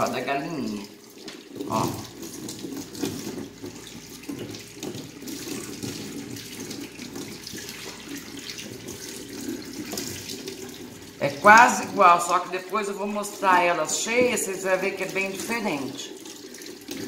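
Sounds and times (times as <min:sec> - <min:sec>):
tap water running into sink: 0:00.0 - 0:17.0.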